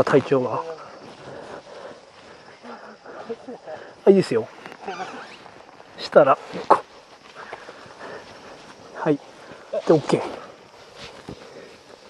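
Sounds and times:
scuffing and rustling on dirt: 0.0s - 12.0s.

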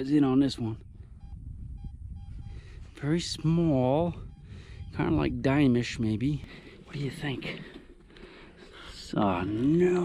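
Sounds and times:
man talking: 0.0s - 0.8s, 2.9s - 4.3s, 4.9s - 7.7s, 8.8s - 10.0s
metal detector short beeps: 0.8s - 5.4s.

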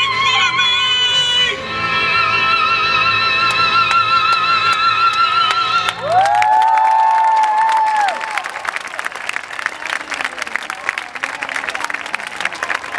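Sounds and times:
audience applauding and cheering: 4.7s - 12.9s
high whoops: 6.0s - 8.7s.

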